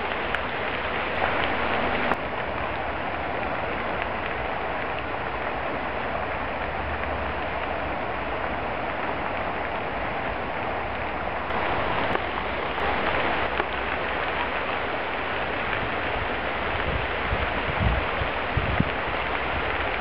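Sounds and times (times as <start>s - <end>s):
fire crackling and hissing: 0.0s - 20.0s.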